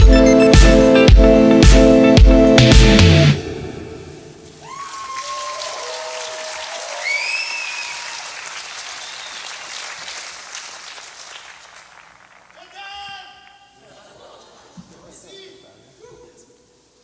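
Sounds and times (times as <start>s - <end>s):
audience applauding and cheering: 4.6s - 13.8s.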